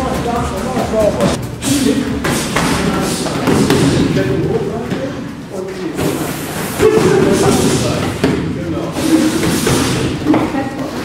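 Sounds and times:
busy training hall noise: 0.0s - 11.0s.

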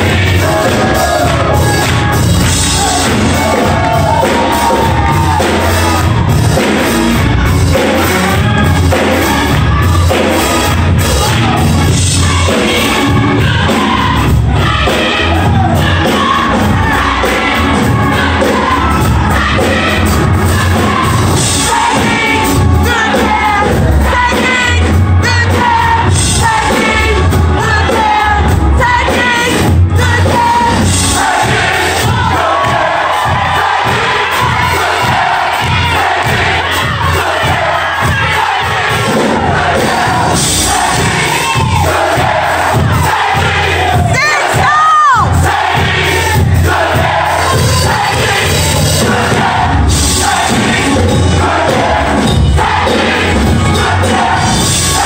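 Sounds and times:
crowd shouting: 0.0s - 27.0s, 27.9s - 55.0s
choir and congregation singing: 0.0s - 55.0s
steady bass beat: 0.0s - 55.0s.

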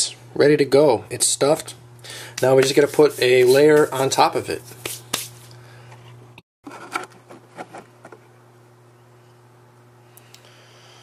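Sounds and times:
low electrical hum: 0.0s - 11.0s
hands clicking and tapping: 4.8s - 5.3s.

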